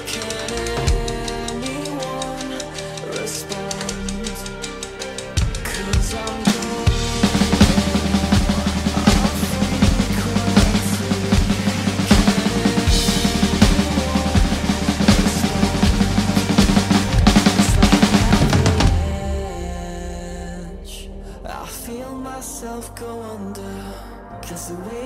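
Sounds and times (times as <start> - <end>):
rock backing track: 0.0 - 19.9
drum kit played hard and fast: 0.0 - 20.4.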